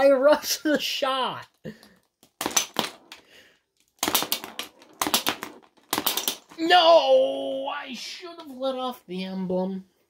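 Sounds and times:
marble knocking against plastic: 1.9s - 3.3s, 3.9s - 6.6s
toy marble shooter clicks: 4.0s - 6.6s.

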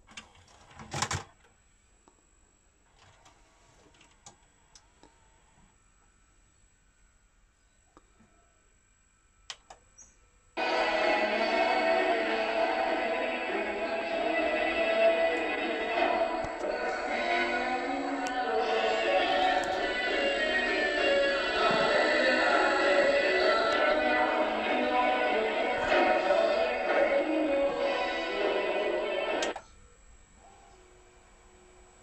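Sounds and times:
music with singing through television: 10.6s - 29.8s.

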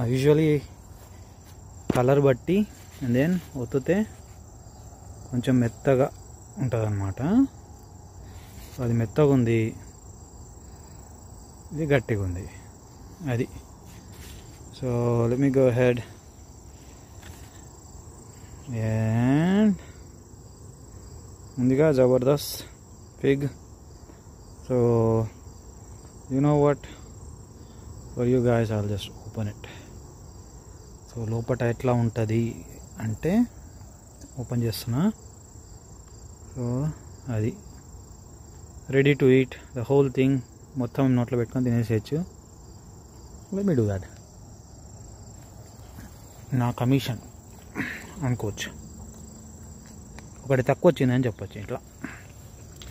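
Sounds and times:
man speaking: 0.0s - 0.8s, 1.9s - 4.2s, 11.7s - 13.7s, 14.7s - 16.2s, 43.5s - 44.2s, 46.4s - 48.9s, 50.4s - 52.2s
insects chirring: 0.0s - 52.9s.

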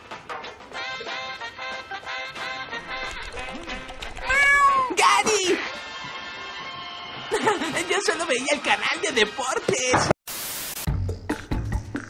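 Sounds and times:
cartoon cat-like meow: 4.2s - 5.2s.

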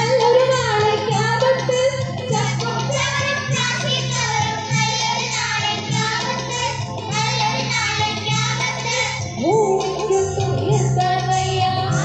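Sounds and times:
girls singing over loudspeaker: 0.0s - 12.0s.

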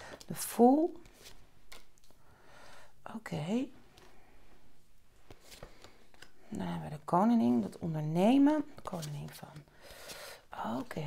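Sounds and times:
cards sliding swishes: 0.0s - 2.2s, 3.9s - 6.4s.

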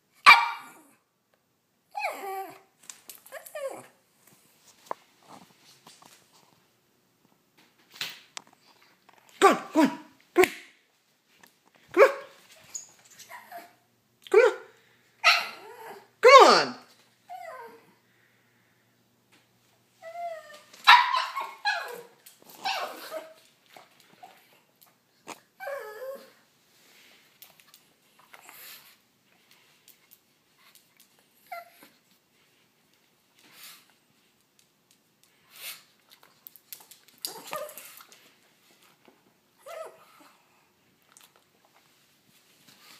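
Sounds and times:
dog barking: 0.2s - 0.8s, 11.9s - 12.4s, 20.9s - 21.9s
dog whining: 1.9s - 4.0s, 12.7s - 14.5s, 15.2s - 16.1s, 17.3s - 17.9s, 20.0s - 23.4s, 25.6s - 26.4s, 39.6s - 40.4s.

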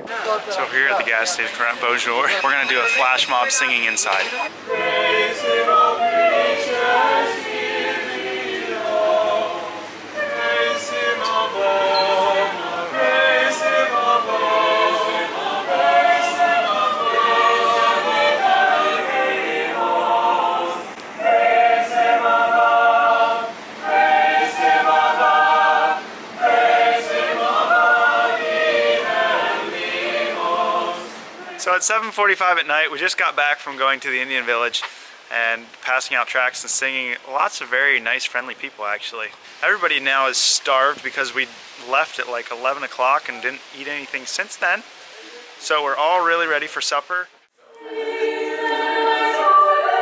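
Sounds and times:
unaccompanied choir singing: 1.2s - 32.1s, 47.6s - 50.0s.

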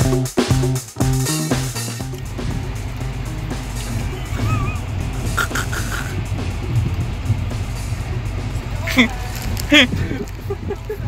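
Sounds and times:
low rumble of moving train: 1.7s - 11.0s.

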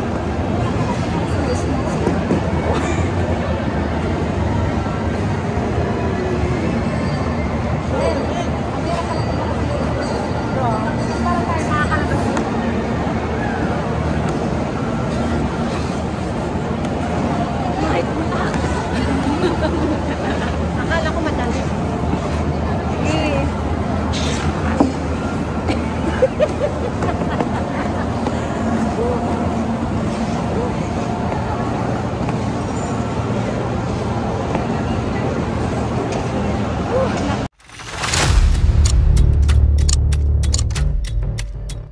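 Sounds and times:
faint voices: 0.0s - 37.5s
crowd babble: 0.0s - 41.9s.

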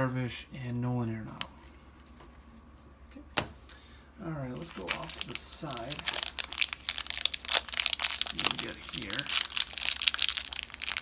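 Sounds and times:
foil wrapper crinkling: 4.5s - 11.0s.

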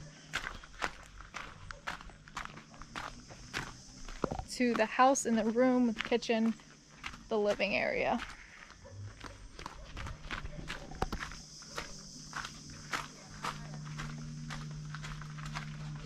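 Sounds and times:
steady low hum: 0.0s - 16.0s
footsteps on concrete: 0.3s - 16.0s.

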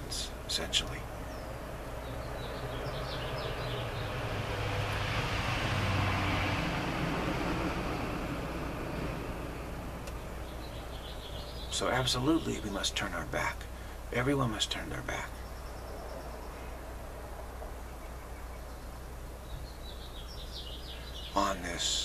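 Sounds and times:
vehicle passing by: 0.1s - 12.4s.

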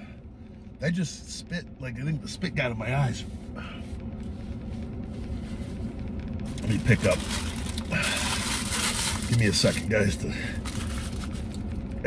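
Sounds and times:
truck cab hum: 0.0s - 12.0s
rustling handling noise: 4.2s - 11.9s.

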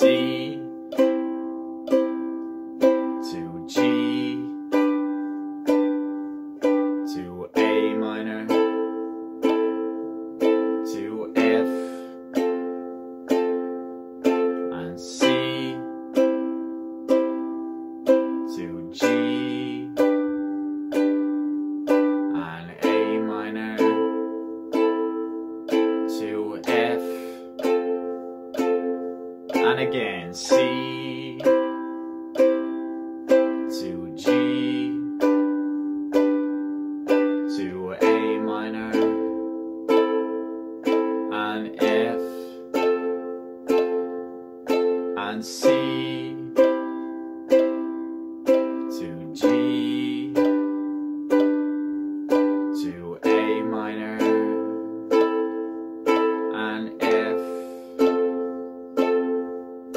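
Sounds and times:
ukulele strumming: 0.0s - 59.9s.

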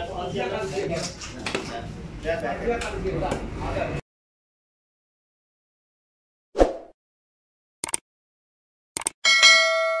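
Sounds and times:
quick double click: 9.0s - 9.2s
bright bell ding: 9.2s - 10.0s.

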